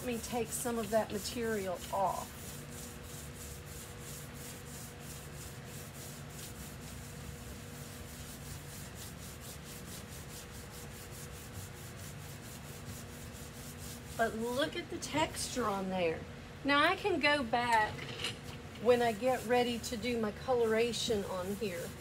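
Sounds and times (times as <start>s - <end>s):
sponge scrubbing painted board: 0.0s - 14.9s, 18.8s - 22.0s
faint steady hum: 0.0s - 22.0s.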